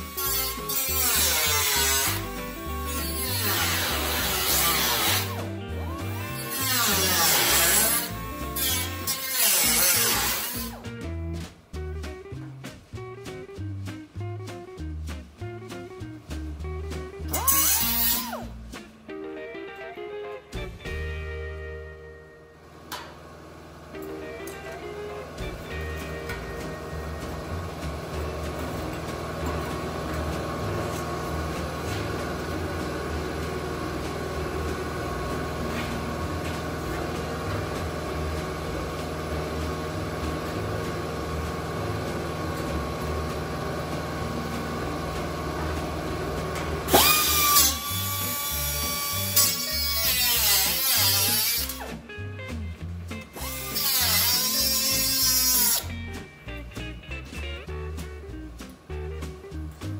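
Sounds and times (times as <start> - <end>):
cut-off wheel cutting steel: 0.0 - 10.8, 17.3 - 18.5, 24.0 - 52.0, 53.3 - 55.9
guitar background music: 0.0 - 59.9.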